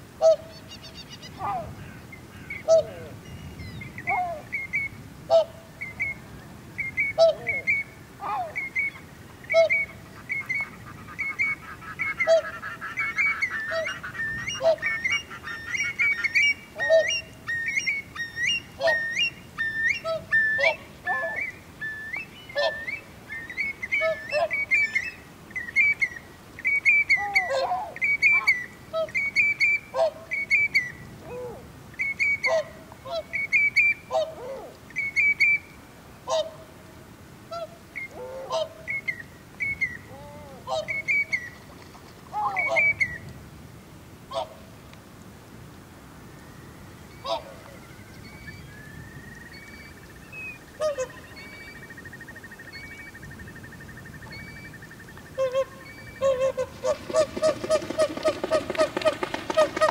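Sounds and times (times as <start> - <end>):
birds calling: 0.2 - 36.5, 37.5 - 43.4, 46.7 - 59.9.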